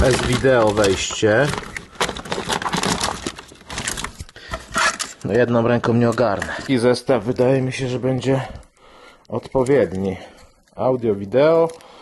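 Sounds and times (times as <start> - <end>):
cables and plugs clattering in box: 0.0 - 6.9.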